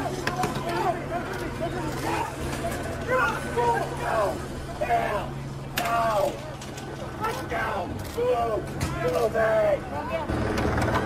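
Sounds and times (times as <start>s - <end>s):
crowd shouting: 0.0s - 10.3s
steady low hum: 0.0s - 11.0s.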